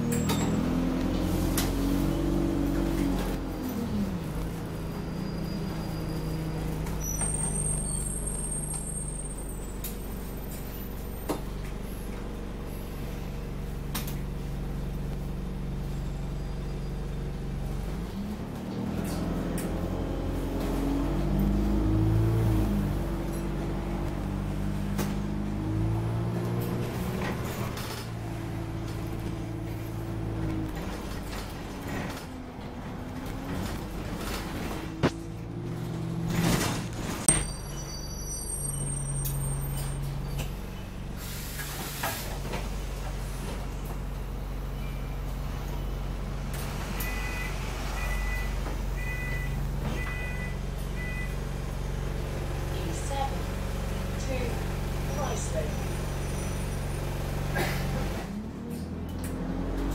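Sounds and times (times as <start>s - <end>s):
bus diesel engine: 0.0s - 59.9s
air brake hiss: 41.2s - 42.4s.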